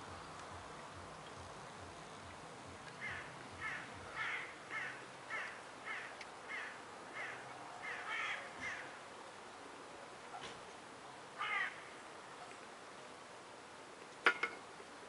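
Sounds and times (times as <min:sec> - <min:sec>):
bird calling: 0:02.9 - 0:09.0, 0:11.4 - 0:12.5.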